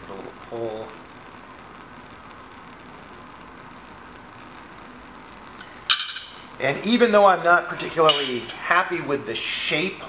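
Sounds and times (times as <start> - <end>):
steady hiss: 0.0 - 10.0
metal tweezers clinking on bench: 5.9 - 6.4, 8.1 - 8.6.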